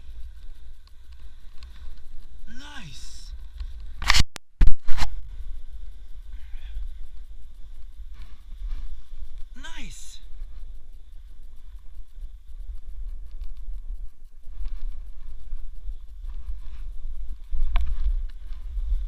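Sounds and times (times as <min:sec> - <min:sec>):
short voice call: 0:02.5 - 0:03.3, 0:09.6 - 0:10.2
wind buffeting microphone: 0:10.2 - 0:19.0.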